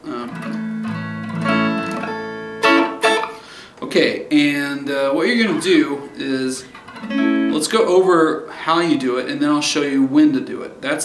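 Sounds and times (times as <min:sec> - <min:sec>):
clean electric guitar chord strummed: 0:00.1 - 0:03.5, 0:06.9 - 0:07.8.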